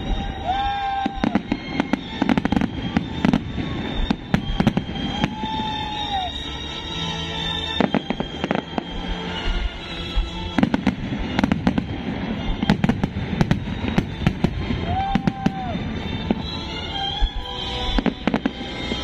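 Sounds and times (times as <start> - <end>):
fireworks bangs and crackles: 0.0 - 6.4, 7.4 - 19.0
music playing: 0.0 - 19.0.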